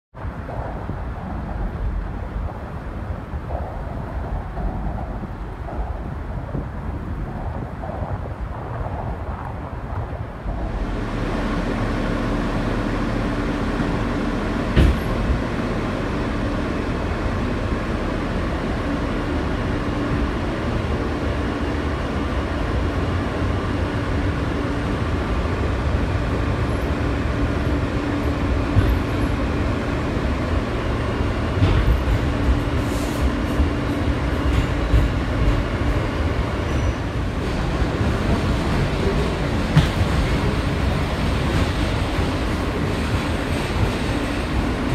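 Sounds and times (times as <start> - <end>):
subway car running noise: 0.1 - 44.9.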